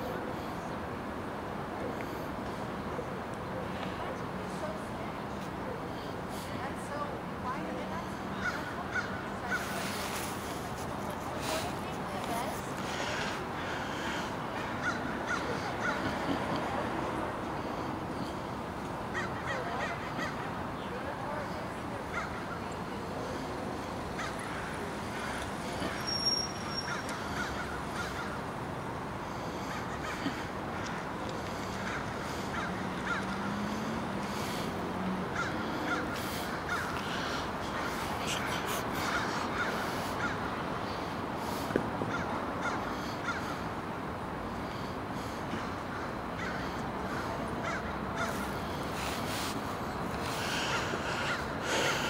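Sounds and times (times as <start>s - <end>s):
outdoor background hum: 0.0s - 52.0s
bird cawing: 8.4s - 9.7s, 12.9s - 16.2s, 19.1s - 20.5s, 24.2s - 28.5s, 29.3s - 34.4s, 35.3s - 41.0s, 42.1s - 43.6s, 45.5s - 48.7s, 50.3s - 52.0s.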